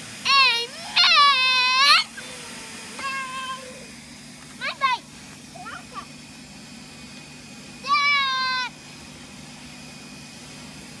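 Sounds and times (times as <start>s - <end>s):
child's high-pitched squeal: 0.3s - 2.4s, 3.0s - 3.9s, 5.6s - 6.1s, 7.8s - 8.8s.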